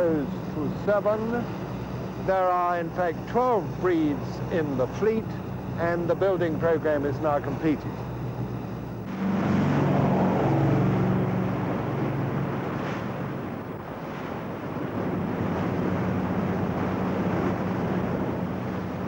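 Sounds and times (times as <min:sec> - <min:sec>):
boat engine drone: 0:00.0 - 0:19.0
wind buffeting microphone: 0:07.8 - 0:19.0
rushing water and spray: 0:09.0 - 0:19.0.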